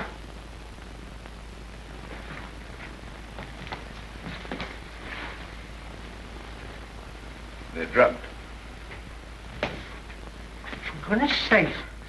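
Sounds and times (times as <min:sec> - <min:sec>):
film soundtrack hiss and hum: 0:00.0 - 0:12.0.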